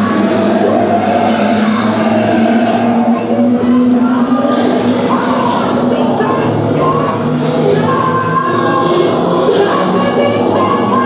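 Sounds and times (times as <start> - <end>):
droning soundtrack: 0.0 - 11.0.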